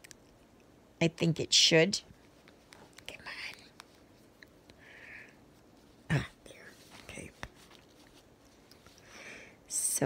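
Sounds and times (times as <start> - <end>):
soft hiss: 0.0 - 10.0
needle and thread handling ticks: 2.2 - 4.8
person whispering: 3.0 - 3.7, 6.1 - 7.5.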